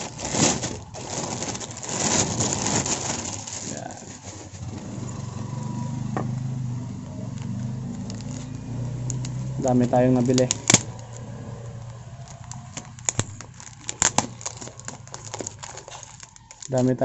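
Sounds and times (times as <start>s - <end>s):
plastic pouch crinkling: 0.0s - 4.7s, 7.3s - 17.0s.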